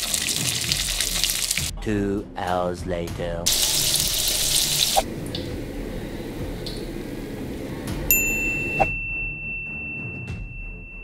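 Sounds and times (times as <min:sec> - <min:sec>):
low background music: 0:00.2 - 0:11.0
bright ringing ding: 0:08.1 - 0:11.0.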